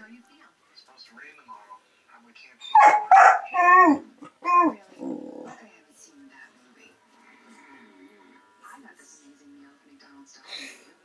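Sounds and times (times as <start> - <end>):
dog barking: 2.7 - 4.0
dog growling: 2.8 - 5.7.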